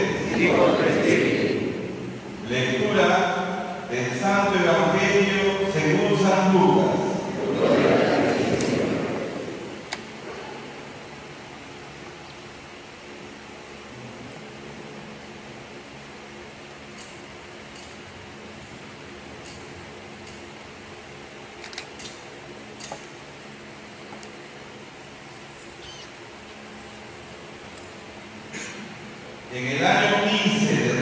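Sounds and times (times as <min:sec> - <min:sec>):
low room hum: 0:00.0 - 0:31.0.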